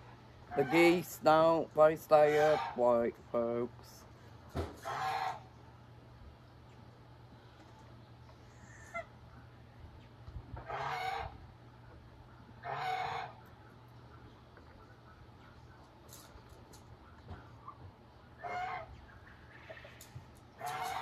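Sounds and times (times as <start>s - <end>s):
chickens calling: 0.0s - 21.0s.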